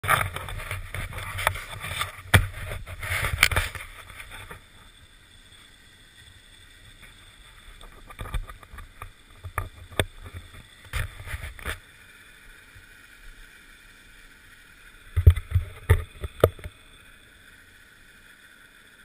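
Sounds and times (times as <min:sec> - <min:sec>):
rubbing on microphone: 0:00.0 - 0:04.6, 0:09.7 - 0:11.8.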